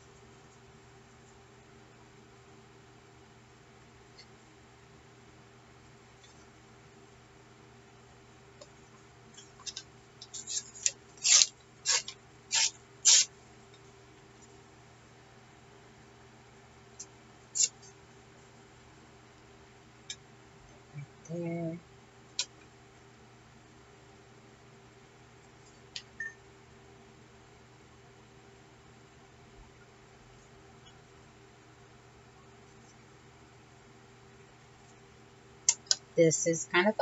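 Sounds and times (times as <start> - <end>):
faint steady hum: 0.0 - 37.0.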